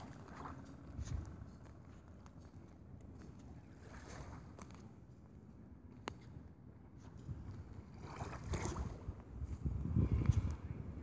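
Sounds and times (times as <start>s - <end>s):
sea washing at the shore: 0.0s - 2.5s, 3.1s - 5.2s, 7.0s - 11.0s
wind rumble on microphone: 0.0s - 11.0s.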